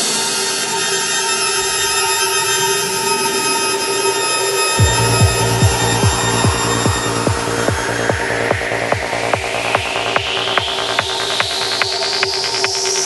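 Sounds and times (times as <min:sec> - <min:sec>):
rising noise sweep: 0:04.7 - 0:13.0
sustained synth tones: 0:04.8 - 0:11.8
kick drum: 0:04.8 - 0:12.8.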